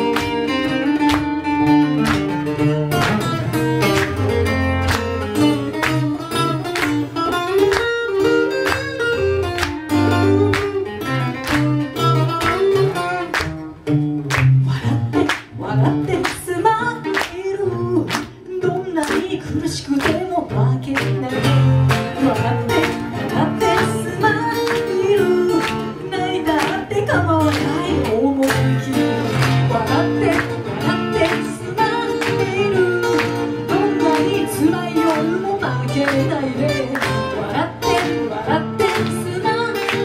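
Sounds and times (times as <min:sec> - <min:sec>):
acoustic guitar: 0:00.0 - 0:40.0
woman singing pop song: 0:14.6 - 0:40.0.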